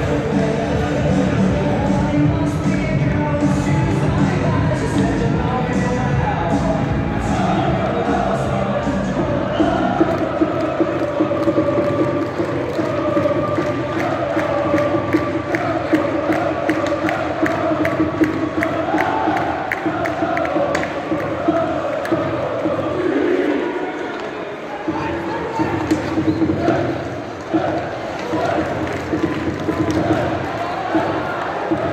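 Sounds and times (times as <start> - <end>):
rhythmic beat: 0.0 - 23.3, 24.9 - 31.9
crowd chanting in unison: 0.0 - 31.9.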